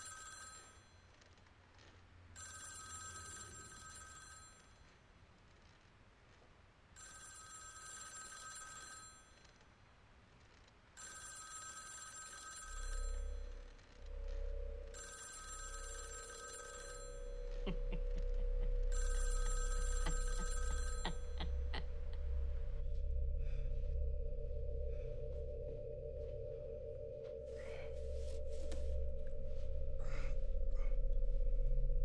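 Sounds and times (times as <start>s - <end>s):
old telephone bell ringing: 0.0s - 1.0s, 2.4s - 4.8s, 7.0s - 9.4s, 11.0s - 13.4s, 14.9s - 21.8s
low steady drone: 12.7s - 32.0s.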